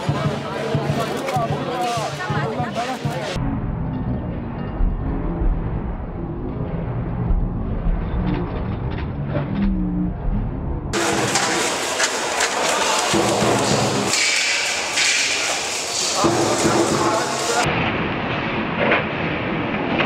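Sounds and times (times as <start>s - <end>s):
crowd chatter: 0.0s - 17.7s.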